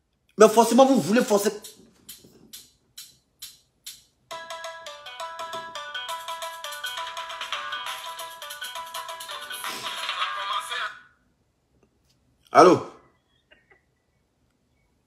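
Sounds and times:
phone ringtone melody: 4.3 - 10.8.

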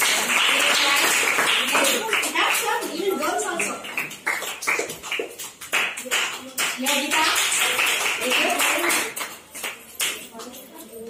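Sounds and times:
hand claps: 0.0 - 10.8.

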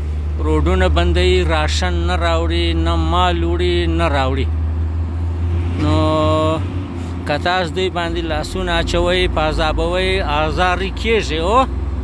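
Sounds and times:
heavy vehicle engine rumble: 0.0 - 12.0.

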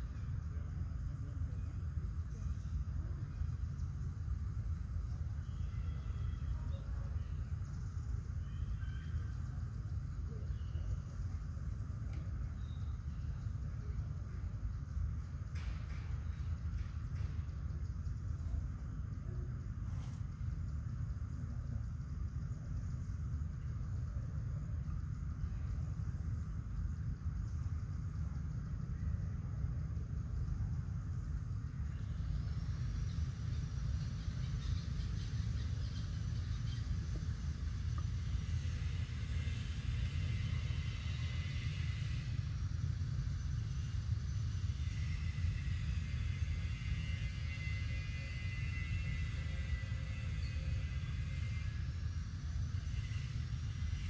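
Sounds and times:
steady low rumble: 0.0 - 54.0
high wavering buzz: 16.3 - 54.0.

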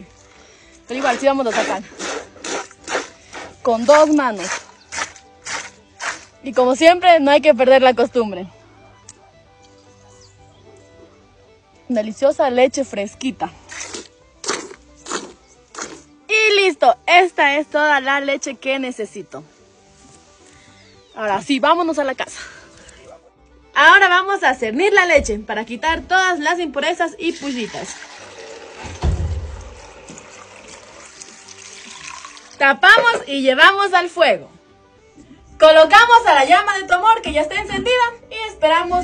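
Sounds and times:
faint background music: 0.0 - 39.0
milk squirting into bucket: 1.0 - 6.4, 13.7 - 16.0, 27.3 - 32.6
milk pouring and splashing: 27.3 - 32.6
low thump: 28.9 - 29.8.

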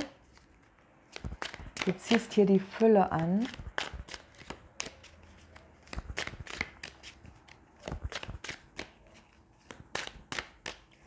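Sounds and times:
cards being shuffled: 0.0 - 2.4, 3.1 - 11.0.

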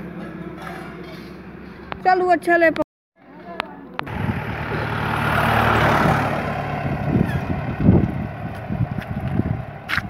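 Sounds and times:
vehicle engine running: 0.0 - 10.0
wind and road noise: 1.3 - 10.0.

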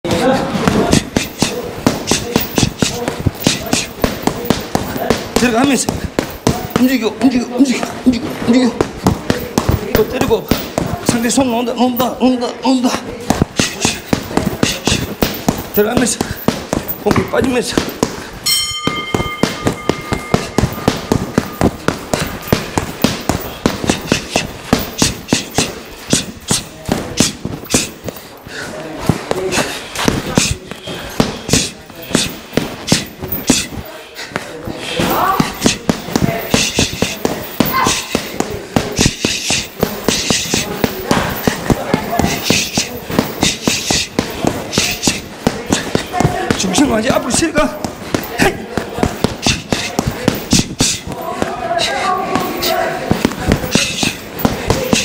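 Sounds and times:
gloves thudding on punching bag: 0.6 - 12.0, 12.8 - 55.0.

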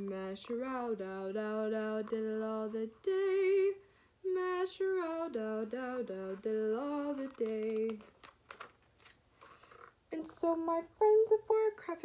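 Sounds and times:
book page turning: 6.3 - 10.0.

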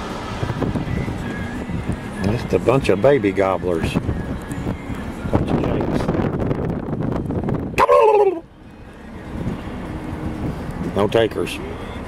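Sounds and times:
vehicle running: 0.0 - 12.0
man imitating turkey gobble: 7.8 - 8.4.

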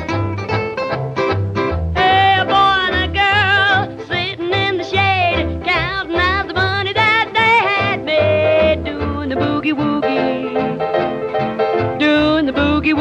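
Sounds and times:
pulsing bass: 0.0 - 10.9
country boogie band playing: 0.0 - 13.0.

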